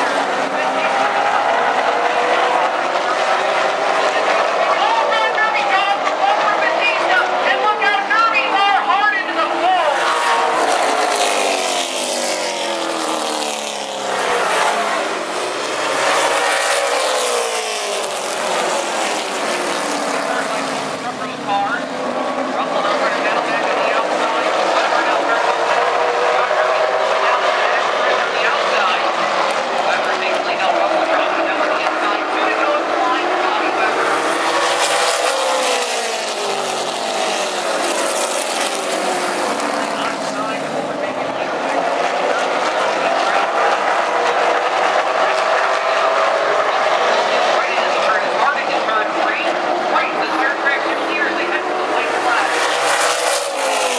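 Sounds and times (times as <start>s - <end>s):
race car engines passing: 0.0s - 53.9s.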